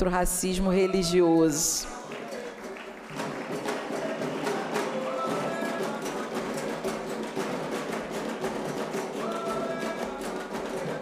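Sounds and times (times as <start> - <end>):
drums struck with sticks: 3.1 - 11.0.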